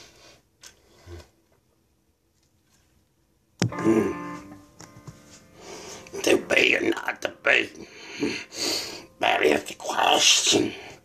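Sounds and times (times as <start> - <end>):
breathy exhale through nose: 5.4 - 6.1, 7.8 - 9.2.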